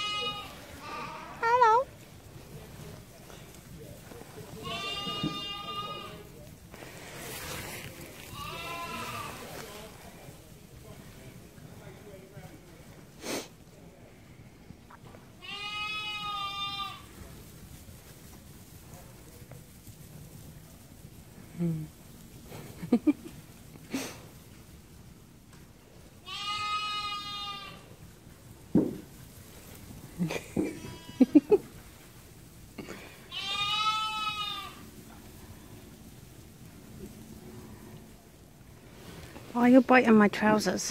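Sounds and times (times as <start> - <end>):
lamb bleating: 0.0 - 1.6, 4.6 - 6.2, 8.2 - 9.6, 15.4 - 17.1, 26.2 - 27.9, 32.9 - 34.9.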